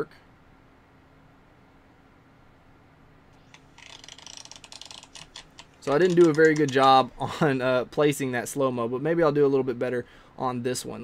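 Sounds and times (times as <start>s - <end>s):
playing cards riffled: 3.4s - 7.2s.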